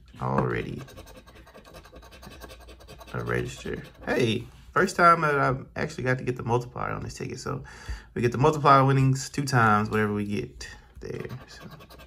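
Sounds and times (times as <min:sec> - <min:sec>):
coin scratching lottery ticket: 0:00.6 - 0:04.2, 0:11.1 - 0:12.0.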